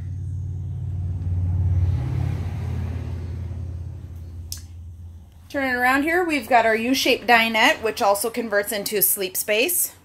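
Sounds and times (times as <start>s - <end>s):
vehicle passing rumble: 0.0s - 9.0s.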